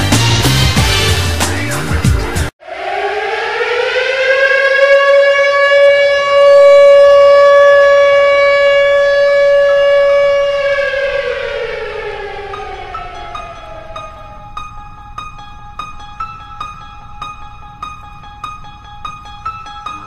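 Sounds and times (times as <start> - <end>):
siren wailing: 2.6 - 16.8.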